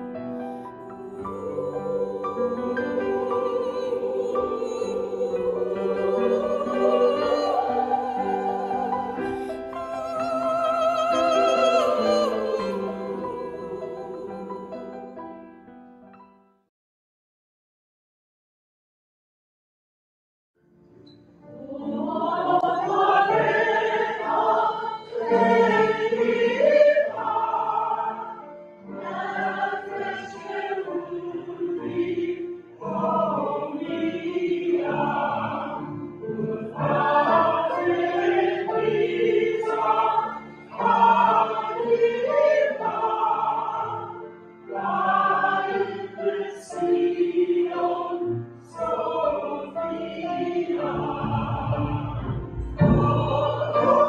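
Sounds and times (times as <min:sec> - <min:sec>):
choir singing slow song: 0:00.0 - 0:15.2, 0:21.1 - 0:54.0.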